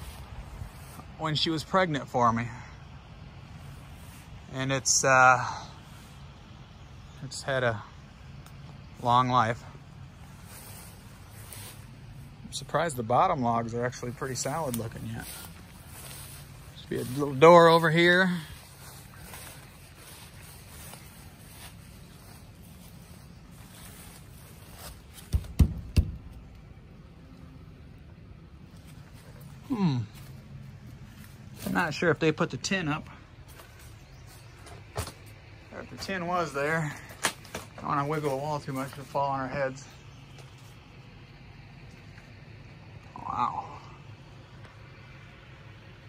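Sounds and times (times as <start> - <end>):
faint woodland background hiss: 0.0 - 46.0
low outdoor background: 0.0 - 46.0
light ticks: 8.4 - 8.8
wooden door knocks: 25.3 - 26.2.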